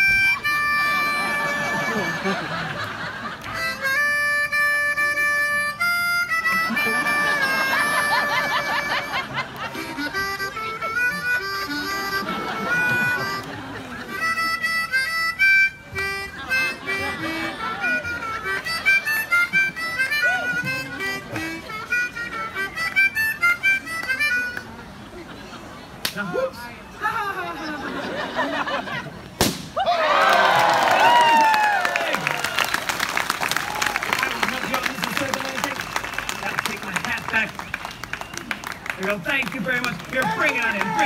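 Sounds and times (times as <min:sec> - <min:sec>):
harmonica playing quick tune: 0:00.0 - 0:02.5, 0:03.4 - 0:24.7.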